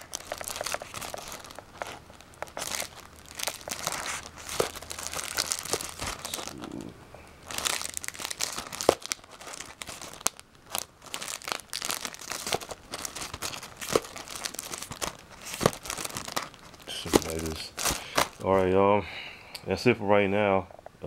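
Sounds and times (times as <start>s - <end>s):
plastic packaging crinkling: 0.0s - 18.7s
packs clicking together: 12.2s - 18.5s.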